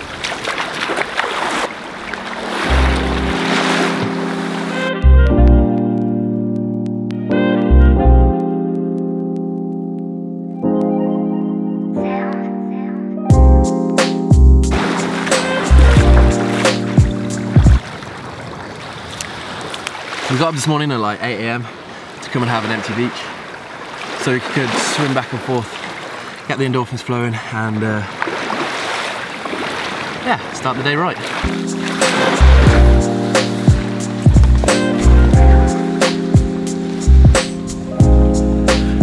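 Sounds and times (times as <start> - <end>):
small waves washing onto sand: 0.0 - 4.8, 14.7 - 27.0, 28.0 - 34.3
background music with deep bass: 2.3 - 17.8, 31.4 - 39.0.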